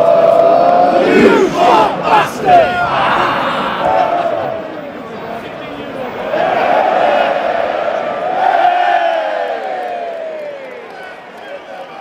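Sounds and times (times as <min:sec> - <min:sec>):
football crowd chanting: 0:00.0 - 0:04.8, 0:06.1 - 0:11.1
crowd yelling: 0:00.0 - 0:12.0.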